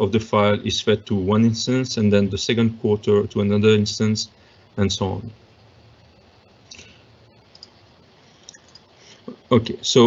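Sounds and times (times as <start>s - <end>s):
faint computer clicks: 7.5s - 7.8s.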